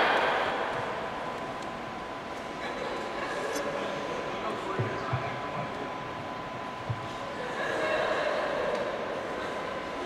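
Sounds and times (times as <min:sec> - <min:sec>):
large hall background noise: 0:00.0 - 0:10.0.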